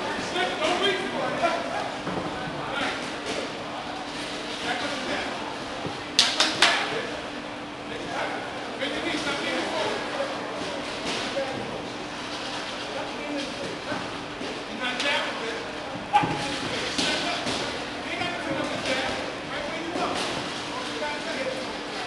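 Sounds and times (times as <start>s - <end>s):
footwork on ring canvas: 0.0s - 22.0s
indistinct echoing voices: 13.3s - 22.0s.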